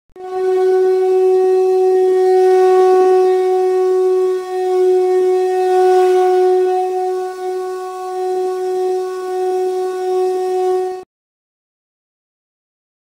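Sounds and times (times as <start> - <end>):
long steady horn note: 0.1 - 11.1.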